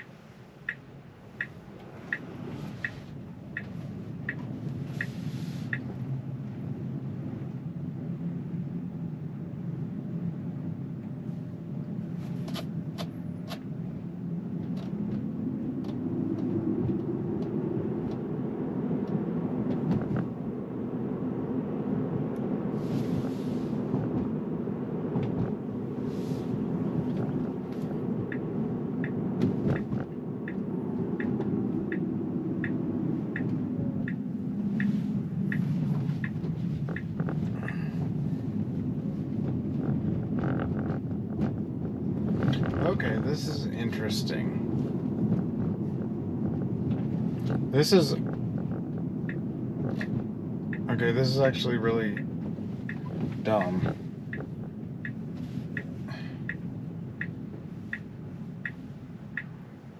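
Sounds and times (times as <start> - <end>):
turn signal ticking: 0.0 - 8.3, 11.0 - 59.9
tyre and road noise: 0.0 - 59.9.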